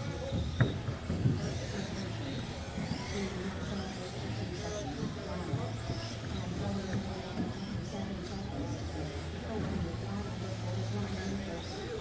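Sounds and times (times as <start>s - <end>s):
rc buggies motor and tyre noise: 0.0s - 12.0s.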